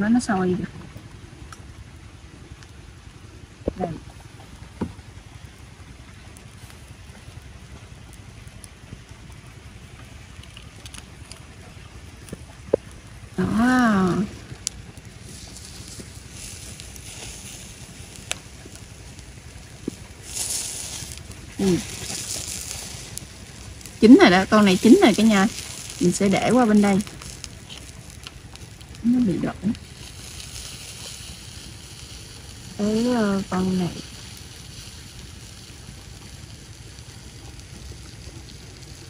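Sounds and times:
clams sizzling on a grill: 0:00.0 - 0:39.0.

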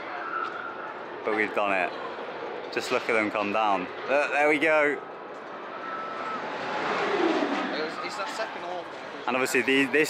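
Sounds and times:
rushing whoosh: 0:06.4 - 0:08.0.

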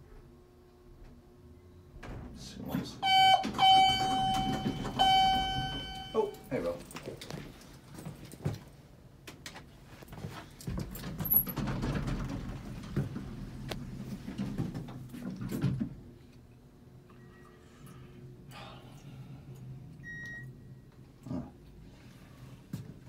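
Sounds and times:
elevator buzzer tone: 0:03.0 - 0:06.5.

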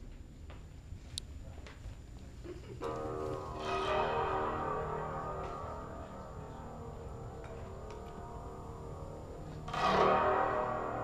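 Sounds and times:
droning metallic string tone: 0:02.9 - 0:11.0.

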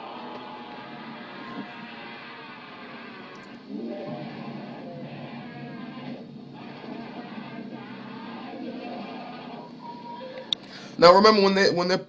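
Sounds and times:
low steady drone with hiss: 0:00.0 - 0:11.0.

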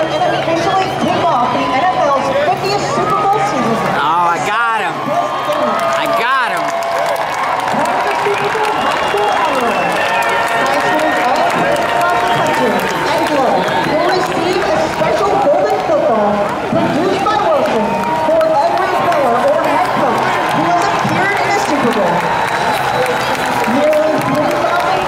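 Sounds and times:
stadium crowd voices: 0:00.0 - 0:25.0.

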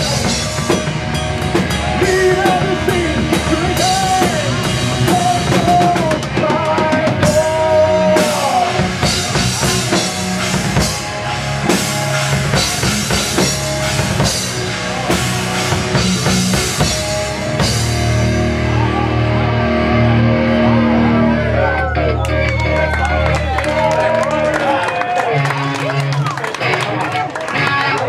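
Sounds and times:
heavy metal band playing live: 0:00.0 - 0:28.0
lead guitar bending notes: 0:00.0 - 0:28.0.

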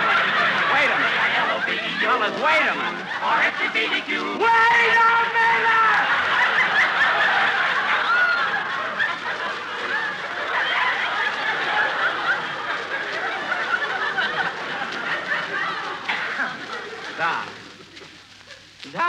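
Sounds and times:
audience laughing: 0:00.0 - 0:18.8.

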